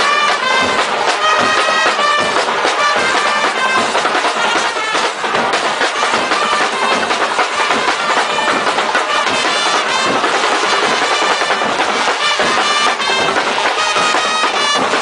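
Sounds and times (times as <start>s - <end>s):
brass band horns: 0.0s - 15.0s
steady drum beat: 0.0s - 15.0s.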